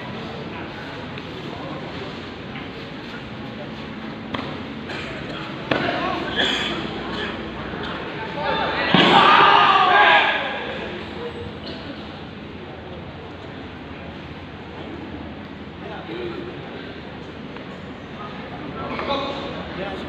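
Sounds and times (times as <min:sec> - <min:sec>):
loud shouting: 0:08.3 - 0:11.0.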